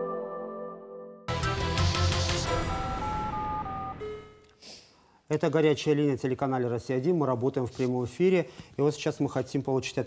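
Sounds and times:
electronic jingle chord tones: 0.0 - 4.4.

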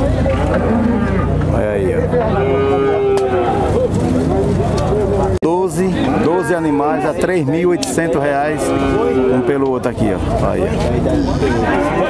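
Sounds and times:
cattle mooing: 0.0 - 3.9, 8.1 - 10.0, 11.0 - 12.0.

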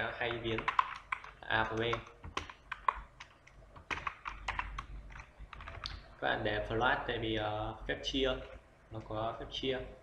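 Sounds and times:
keyboard keystrokes: 0.2 - 6.0.

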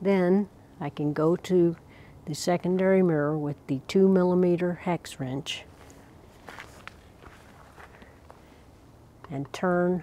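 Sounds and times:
faint footsteps: 5.6 - 8.8.

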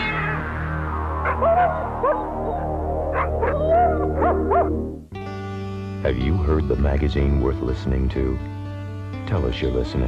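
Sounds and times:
dog yelping: 1.2 - 4.8
dog whining: 1.3 - 4.7.

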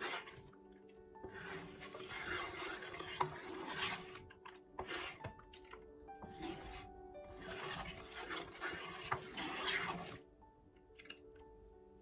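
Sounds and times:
wooden spoon scraping pan: 0.0 - 0.6, 1.2 - 10.3.

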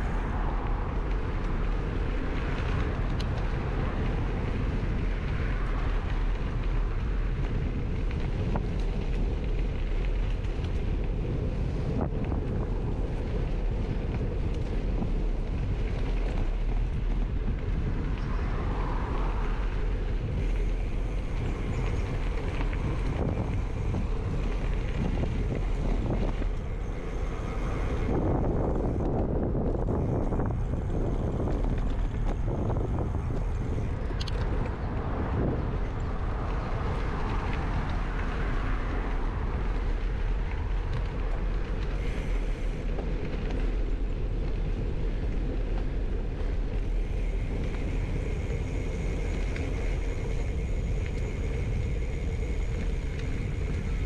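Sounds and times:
tyre noise on dirt path: 0.0 - 54.0
wind rumble on microphone: 0.0 - 54.0.

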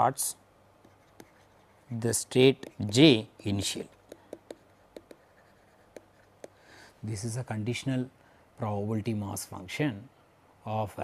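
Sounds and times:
pen writing on paper: 0.8 - 6.6.

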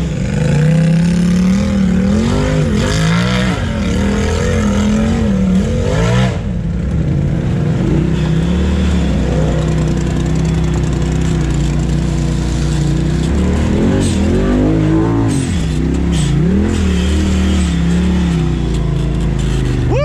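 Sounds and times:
vehicle engine running: 0.0 - 20.0.

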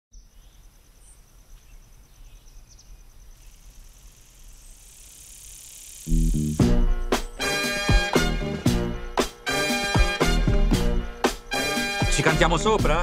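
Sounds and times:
bird chirps: 0.1 - 7.7
insect trilling: 0.2 - 8.1
hiss: 4.4 - 6.7.

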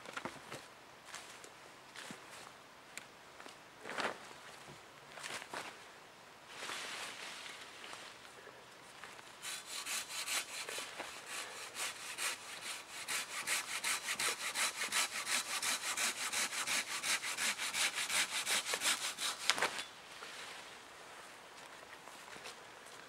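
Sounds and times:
hand saw cutting a log: 9.4 - 19.9.

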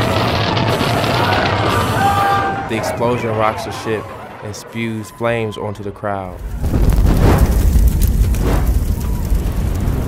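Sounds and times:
explosion rumble: 0.0 - 2.7, 6.4 - 10.0.

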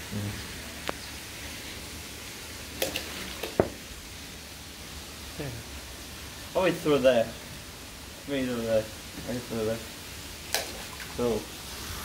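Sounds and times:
low voices: 0.0 - 0.5
outdoor background hiss: 0.0 - 12.0.

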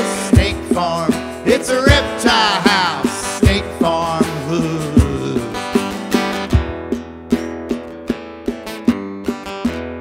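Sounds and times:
person singing: 0.0 - 5.9
acoustic guitar strumming: 0.0 - 10.0
cajon thumps: 0.3 - 10.0.

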